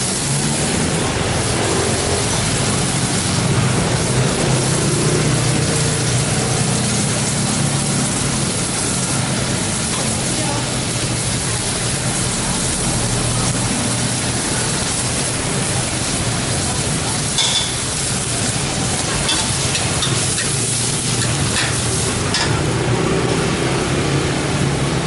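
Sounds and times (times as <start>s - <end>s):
food sizzling in a wok: 0.0s - 25.0s.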